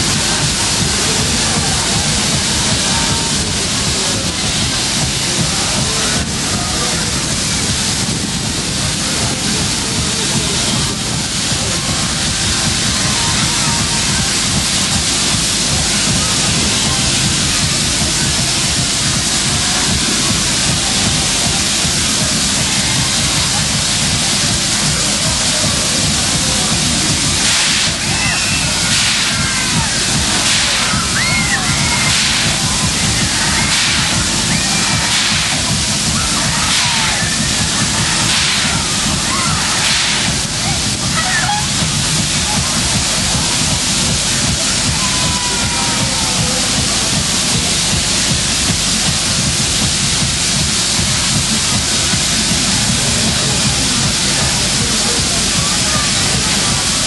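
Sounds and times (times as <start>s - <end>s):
fairground din: 0.0s - 57.0s
music: 0.0s - 57.0s.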